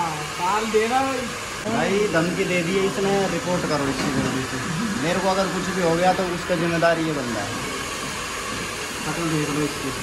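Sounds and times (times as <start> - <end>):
hair dryer blowing: 0.0 - 10.0
men talking: 0.3 - 7.8, 8.9 - 10.0.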